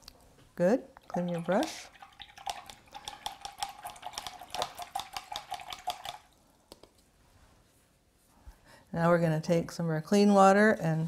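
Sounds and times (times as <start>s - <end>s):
paintbrush clicking in water jar: 2.2s - 7.0s.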